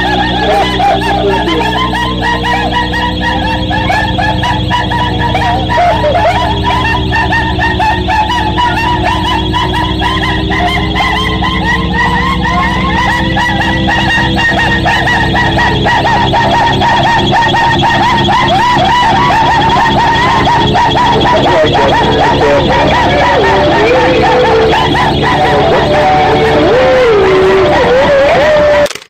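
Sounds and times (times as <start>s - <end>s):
chirping warbling squeals: 0.0s - 28.8s
steady low hum: 0.0s - 28.8s
wavering electronic tone: 0.0s - 28.8s.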